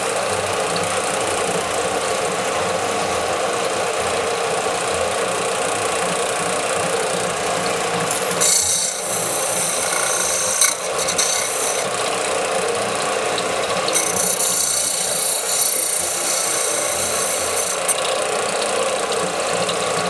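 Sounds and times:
belt and disc sander running: 0.0s - 20.0s
hissing grind of metal on abrasive: 8.1s - 12.0s, 13.3s - 18.1s.

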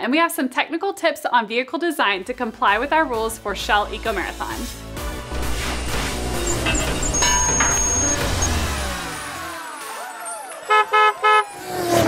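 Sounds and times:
cartoon cars sweeping past: 5.6s - 12.0s
short car horn toots: 10.7s - 11.6s.

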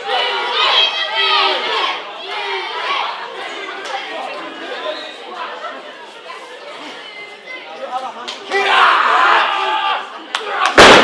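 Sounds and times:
spectators chattering and calling out: 0.0s - 11.0s.

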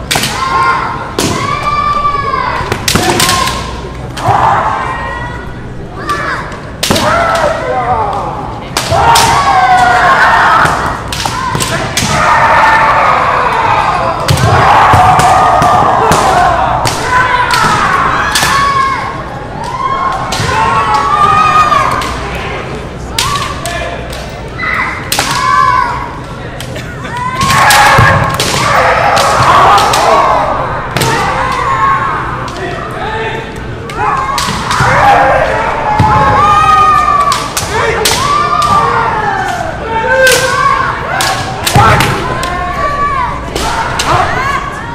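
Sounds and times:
fencers shouting: 0.0s - 26.3s, 27.0s - 44.9s
bamboo swords clacking: 10.6s - 12.2s, 37.2s - 39.6s.

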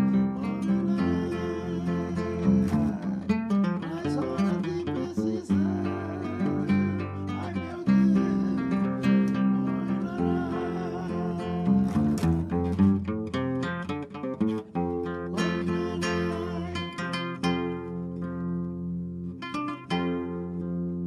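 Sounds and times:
acoustic guitar music: 0.0s - 21.0s.

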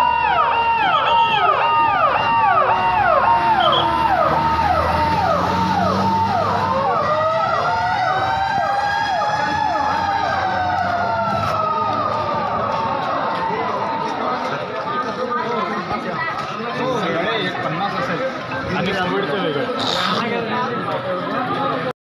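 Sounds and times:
fire engine siren fast sweep: 0.0s - 14.3s
siren slow wail: 0.0s - 14.4s.

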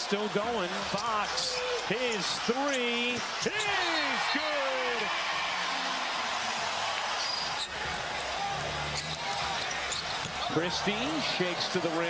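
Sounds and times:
arena crowd voices: 0.0s - 12.0s.

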